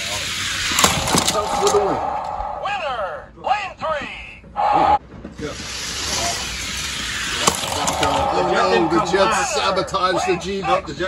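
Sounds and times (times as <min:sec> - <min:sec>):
toy cars rolling on plastic track: 0:00.0 - 0:01.9, 0:05.4 - 0:10.4.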